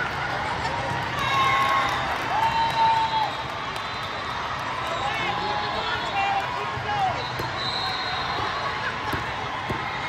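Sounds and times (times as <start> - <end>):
volleyball bouncing on floor: 9.0 - 10.0.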